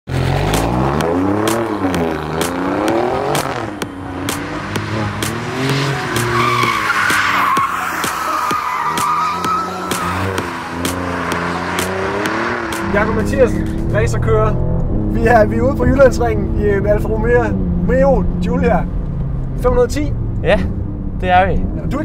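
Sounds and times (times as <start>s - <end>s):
car engine revving: 0.1s - 22.0s
tyres squealing: 4.8s - 12.3s.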